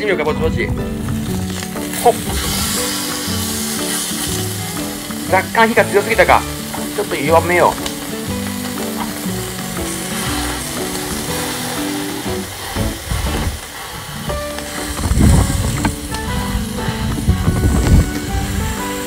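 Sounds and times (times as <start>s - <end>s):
background music: 0.0s - 19.0s
steak sizzling on a grill: 0.0s - 19.0s
low rumbling bumps: 14.3s - 18.8s.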